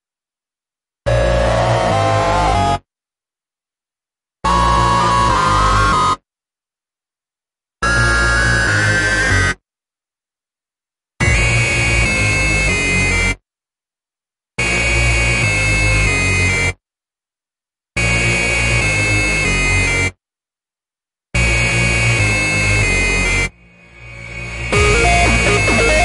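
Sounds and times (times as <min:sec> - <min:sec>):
hard dance music: 0:11.2 - 0:12.4, 0:23.8 - 0:26.0.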